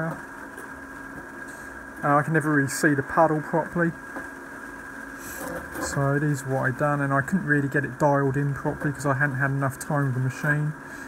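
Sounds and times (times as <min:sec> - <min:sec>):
faint high whine: 0:00.0 - 0:11.0
machine hum: 0:00.0 - 0:11.0.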